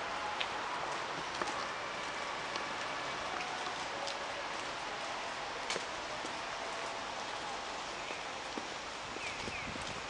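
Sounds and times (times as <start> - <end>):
rain hiss: 0.0 - 10.0.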